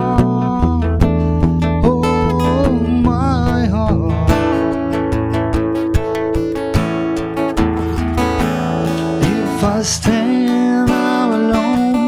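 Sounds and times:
man singing: 0.0 - 5.2, 9.0 - 12.0
acoustic guitar strumming: 0.0 - 12.0.

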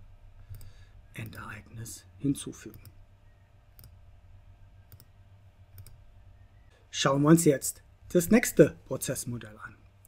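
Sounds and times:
low room hum: 0.0 - 10.0
faint computer mouse clicks: 0.5 - 1.4, 4.9 - 5.1, 5.7 - 6.0.

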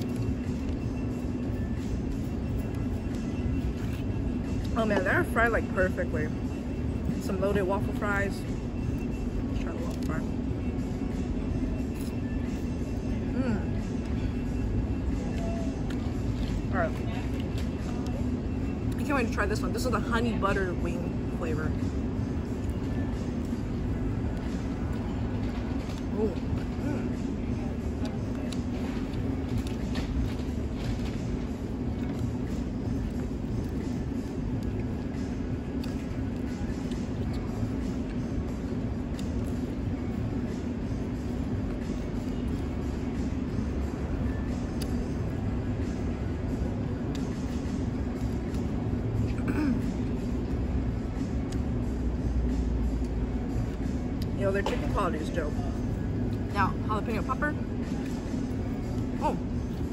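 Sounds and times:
constant low hum: 0.0 - 59.9.

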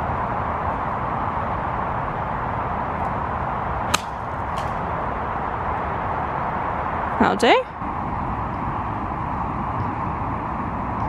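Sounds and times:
golf club striking ball: 3.9 - 5.1.

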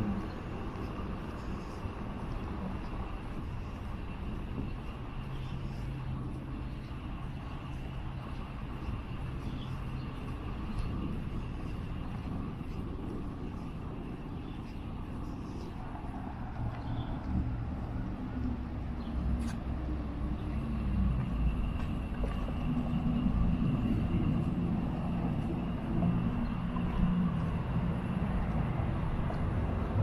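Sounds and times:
low hum: 0.0 - 30.0
street rumble: 0.0 - 30.0.

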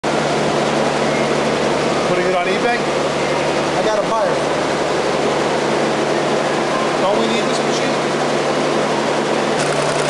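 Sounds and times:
loud mechanical hum: 0.0 - 10.0.

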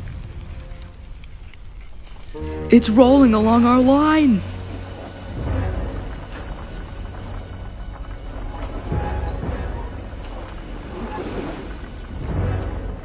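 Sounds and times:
boulder rolling rumble: 0.0 - 2.4
tense dramatic music: 0.0 - 13.0.

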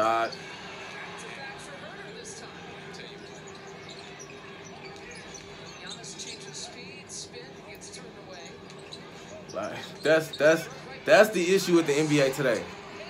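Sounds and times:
arena crowd noise: 0.0 - 13.0
commentator's voice: 9.7 - 12.7.

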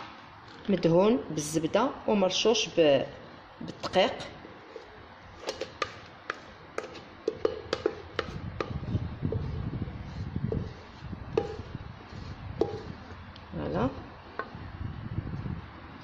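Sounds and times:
low rumbling handling noise: 5.1 - 15.7.

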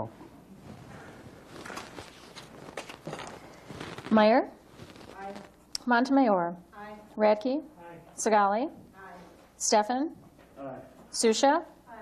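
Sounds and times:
low background hiss: 0.0 - 12.0.

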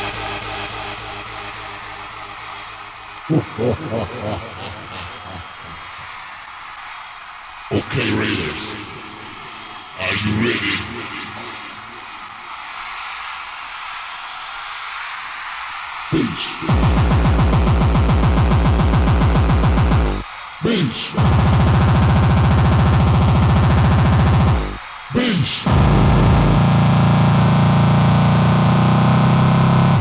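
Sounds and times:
buzzing distorted synth note: 16.6 - 20.2, 21.2 - 24.8, 25.7 - 30.0.

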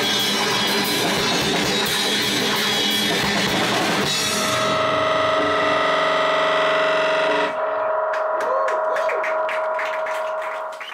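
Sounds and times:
distorted rock band chord: 0.0 - 8.4.

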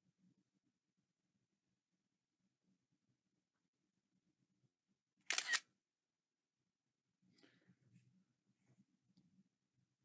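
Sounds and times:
camera shutter click: 5.3 - 5.6.

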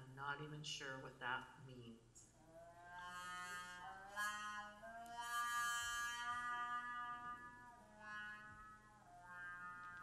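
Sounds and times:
trumpet playing long notes: 2.4 - 10.0.

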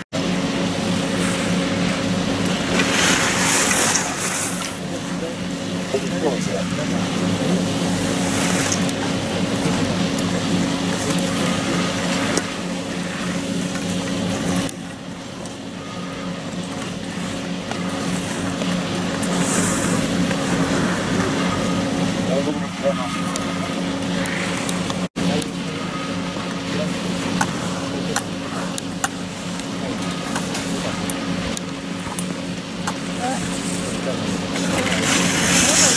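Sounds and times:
low mechanical hum: 0.0 - 35.9
outdoor noise: 0.0 - 35.9.

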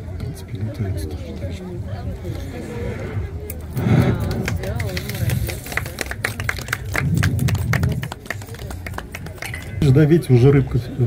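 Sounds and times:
indistinct talk: 0.0 - 11.0.

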